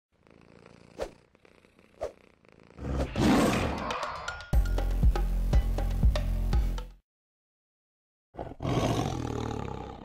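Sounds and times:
tiger roaring: 0:08.4 - 0:10.0.

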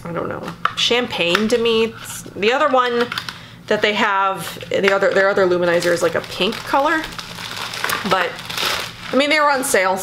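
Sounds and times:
packaging crinkling: 0:05.1 - 0:09.9.

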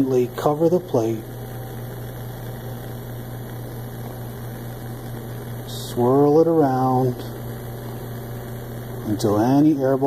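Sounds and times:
faint hiss: 0:00.0 - 0:10.0
low hum: 0:00.0 - 0:10.0.

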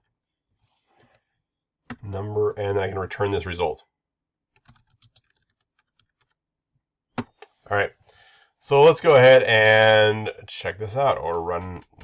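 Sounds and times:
computer keyboard typing: 0:04.6 - 0:06.4.

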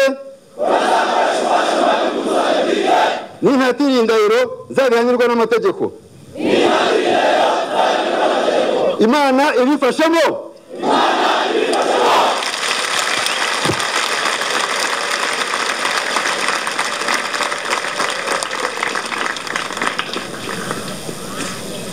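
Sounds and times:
crowd noise: 0:00.5 - 0:03.5, 0:06.3 - 0:09.1, 0:10.6 - 0:21.9
crowd shouting together: 0:00.6 - 0:03.4, 0:06.4 - 0:09.0, 0:10.7 - 0:12.5.

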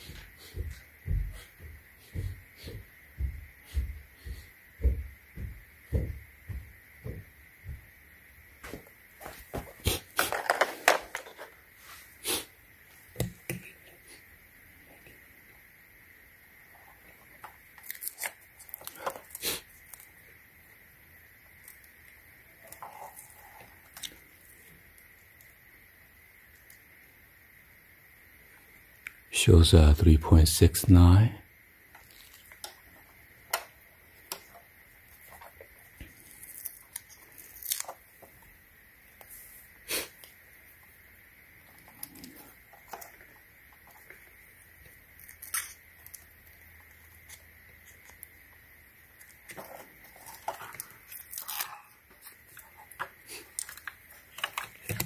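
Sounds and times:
soft low thumps: 0:00.0 - 0:08.0
rustling and crinkling: 0:08.6 - 0:12.2, 0:31.9 - 0:38.5, 0:41.6 - 0:55.0.

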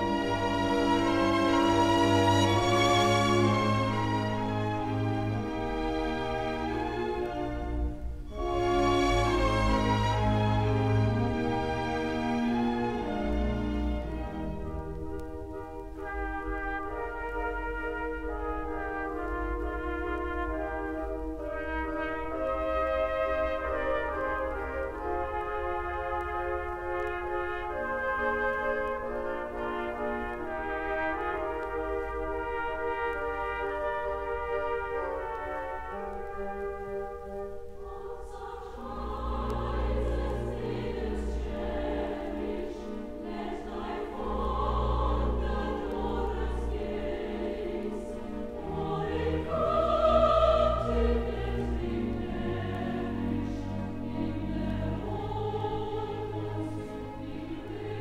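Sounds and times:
chorus singing: 0:00.0 - 0:58.0
orchestra with prominent brass: 0:00.0 - 0:58.0.

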